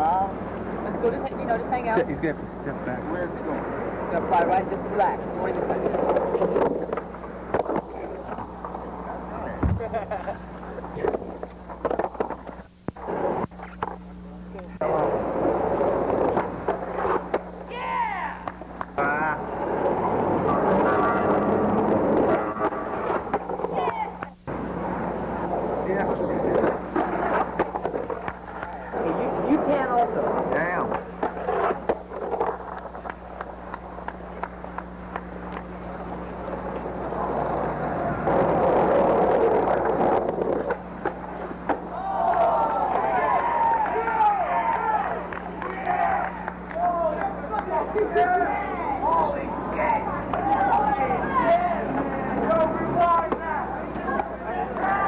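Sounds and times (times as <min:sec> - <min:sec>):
electrical hum from tape: 0:00.0 - 0:55.0
skateboards clacking: 0:03.4 - 0:14.0, 0:14.8 - 0:55.0.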